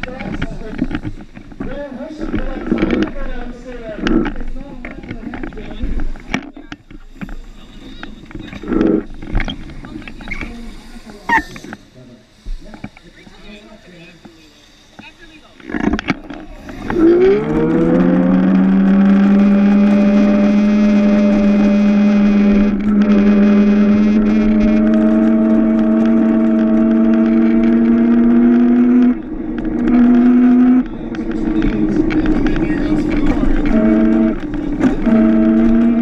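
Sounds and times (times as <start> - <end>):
electric motor whining: 0.0 - 36.0.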